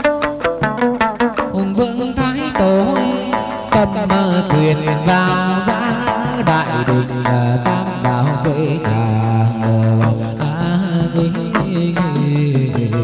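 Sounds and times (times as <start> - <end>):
lute melody: 0.0 - 13.0
percussion beat: 0.0 - 13.0.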